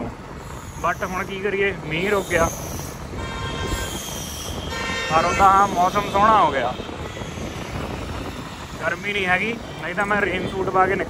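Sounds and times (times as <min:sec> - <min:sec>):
vehicle road rumble: 0:00.0 - 0:11.0
wind noise: 0:00.0 - 0:11.0.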